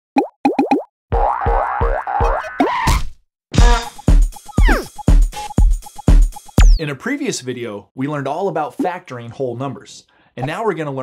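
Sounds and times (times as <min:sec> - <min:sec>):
rising boing pops: 0:01.1 - 0:03.0
theme music: 0:03.6 - 0:06.7.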